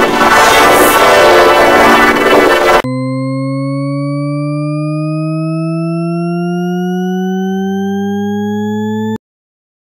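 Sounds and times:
buzzing tone gliding upward: 0.0s - 9.2s
low hum: 0.0s - 9.2s.

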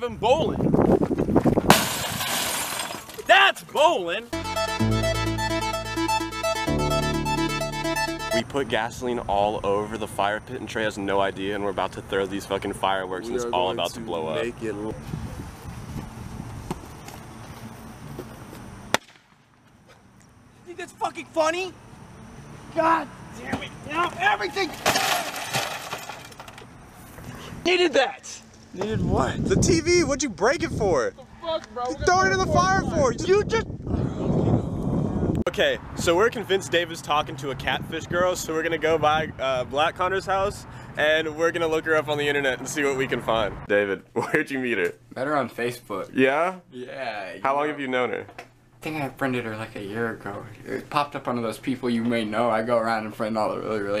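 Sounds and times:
glass breaking and shattering: 1.7s - 3.3s, 24.7s - 26.5s
television smashing: 1.7s - 3.3s, 24.6s - 26.6s.

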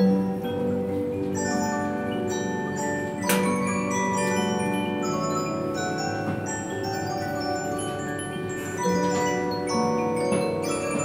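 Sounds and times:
music box playing: 0.0s - 11.0s.

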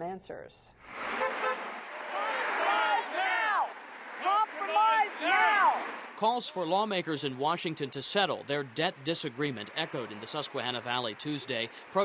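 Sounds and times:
traffic noise: 0.7s - 12.0s
car passing: 0.8s - 12.0s
car horn toots: 1.1s - 3.3s
voices: 1.9s - 12.0s.

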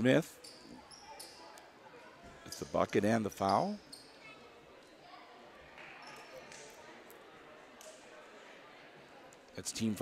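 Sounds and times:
faint murmur of spectators: 0.0s - 10.0s.

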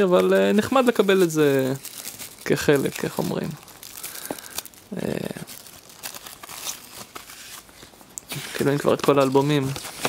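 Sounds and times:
cardboard and paper rustling: 0.0s - 10.0s.

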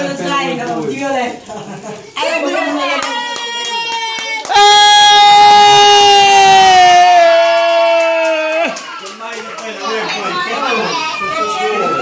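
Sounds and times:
crowd cheering: 2.2s - 12.0s.

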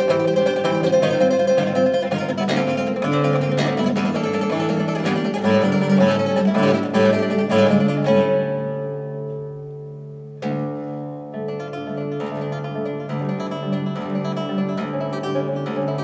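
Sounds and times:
classical guitar fingerpicking: 0.0s - 16.0s.

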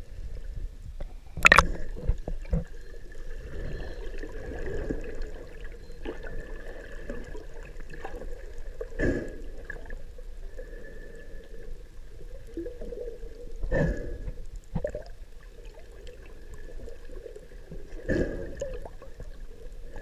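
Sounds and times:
faint constant tone: 0.0s - 20.0s
muffled underwater rumble: 0.0s - 20.0s.

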